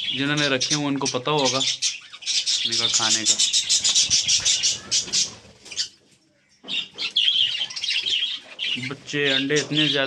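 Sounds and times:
budgerigars chattering: 0.0s - 6.0s, 6.6s - 10.0s.

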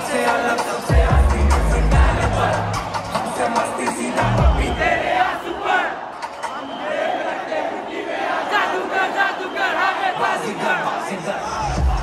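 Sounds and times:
concert crowd yelling: 0.0s - 12.0s.

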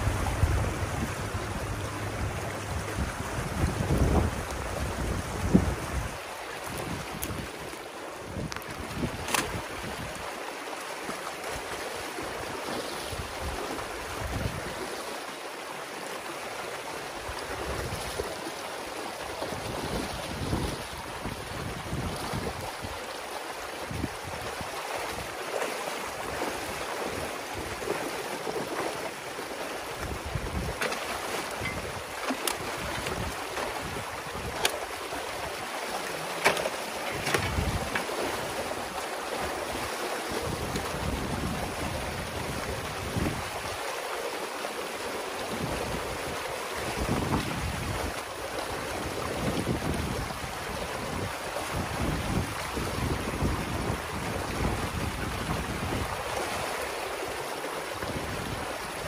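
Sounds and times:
water rushing through dam: 0.0s - 59.0s.

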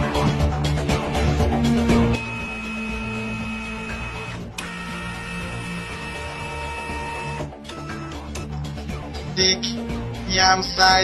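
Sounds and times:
background music: 0.0s - 11.0s
held high tones: 2.1s - 7.4s
mechanical scanning whir: 2.2s - 8.2s.

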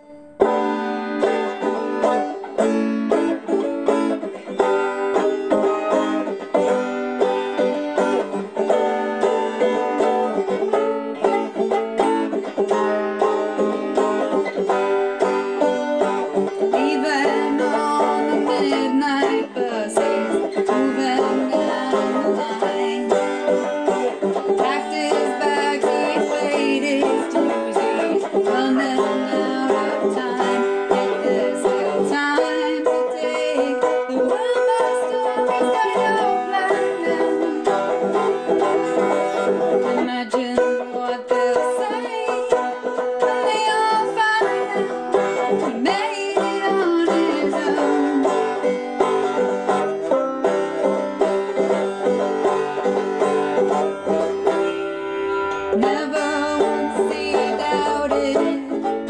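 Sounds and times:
banjo plucked notes: 0.0s - 59.0s.

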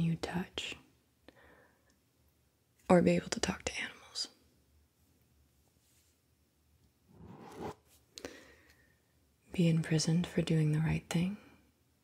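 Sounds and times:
pen stroke on paper: 7.2s - 7.8s.

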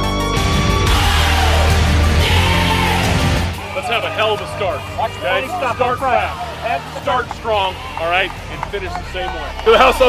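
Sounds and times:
men talking: 3.6s - 10.0s.

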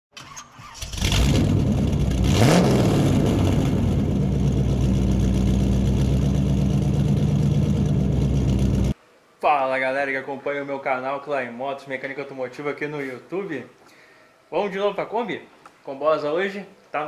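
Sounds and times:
car engine starting and idling: 0.2s - 9.0s.

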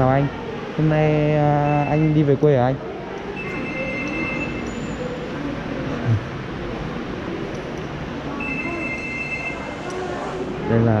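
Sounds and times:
railway station hall background noise: 0.0s - 11.0s.

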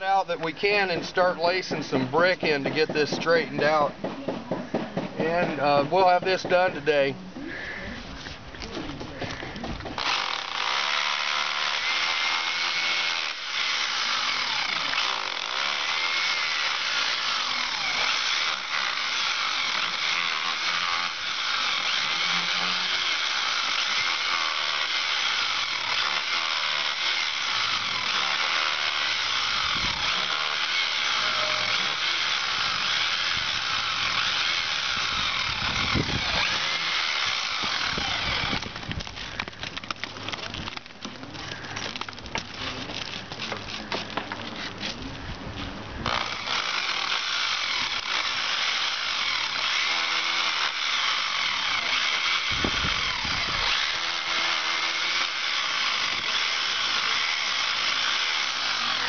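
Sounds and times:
rotary hammer chipping mortar: 8.7s - 45.0s, 46.0s - 59.0s.

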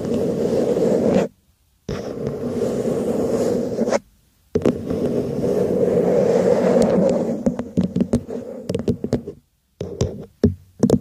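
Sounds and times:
fingernails scratching a cup: 1.9s - 4.0s.

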